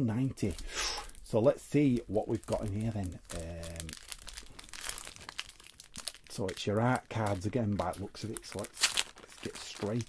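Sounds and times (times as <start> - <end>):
foil wrapper crinkling: 0.2 - 10.0.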